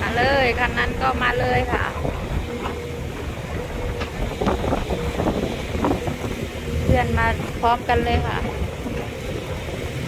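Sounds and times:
tractor engine hum: 0.0s - 10.0s
wind rumbling on microphone: 0.0s - 10.0s.

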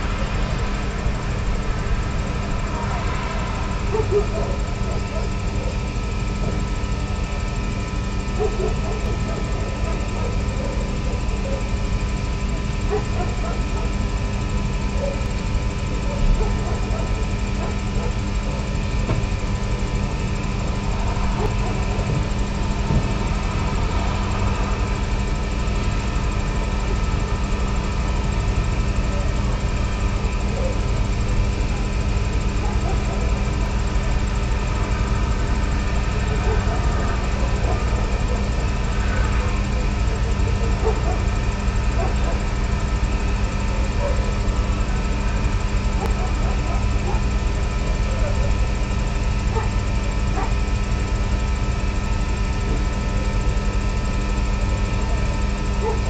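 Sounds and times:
sustained drone tones: 0.0s - 56.0s.

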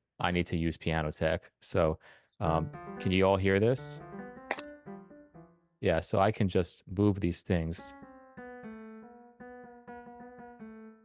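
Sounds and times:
repeated piano note: 2.5s - 5.6s, 7.8s - 11.0s.

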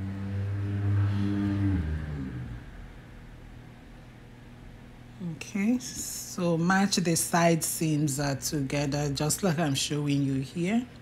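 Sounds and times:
woman humming low note: 0.0s - 3.2s.

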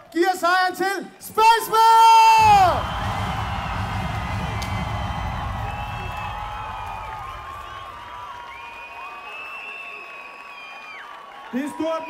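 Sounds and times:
music with heavy bass beat: 2.4s - 8.2s
crowd cheering and whooping: 2.4s - 12.0s.

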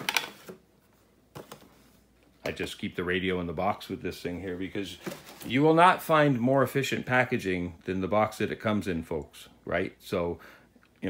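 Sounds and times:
cardboard scraping and rustling: 4.9s - 5.7s.

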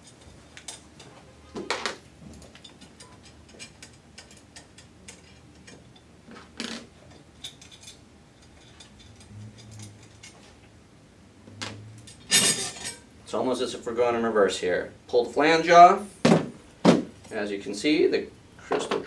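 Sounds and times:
metal nuts ticking and clinking: 2.5s - 6.1s, 7.1s - 10.5s
metal clanks: 11.6s - 13.1s.

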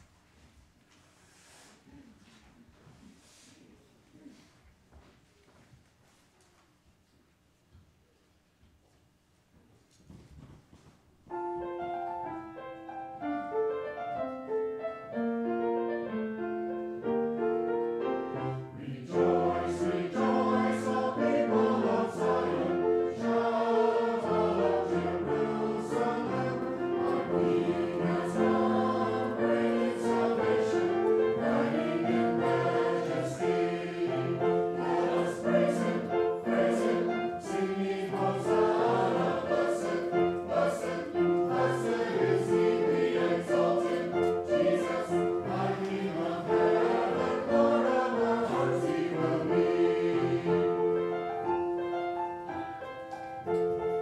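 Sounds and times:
choir singing: 18.0s - 51.7s.

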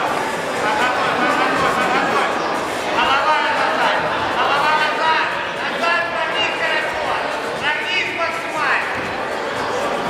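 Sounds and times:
crowd chatter: 0.0s - 10.0s
people talking and calling out: 0.0s - 10.0s.

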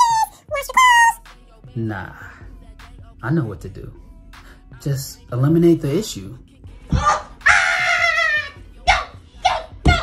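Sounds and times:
falsetto puppet voice crying: 7.0s - 10.0s.

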